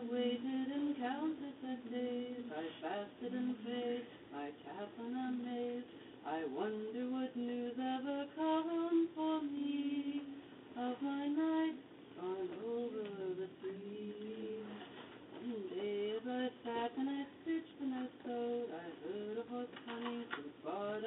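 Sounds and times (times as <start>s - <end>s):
woman singing unaccompanied: 0.0s - 21.0s.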